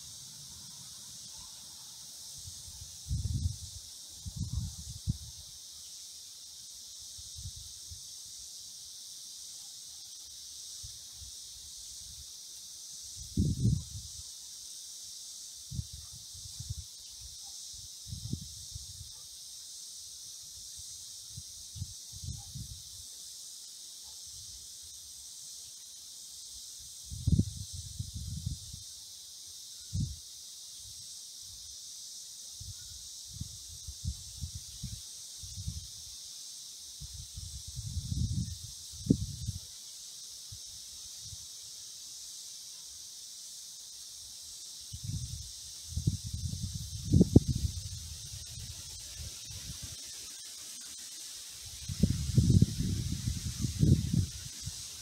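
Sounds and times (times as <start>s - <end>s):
insects buzzing: 0.0s - 55.0s.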